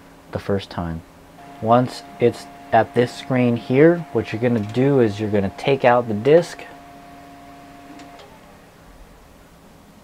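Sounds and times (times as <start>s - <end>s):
disc drive clicks: 1.4s - 8.6s
disc drive motor hum: 1.4s - 9.6s.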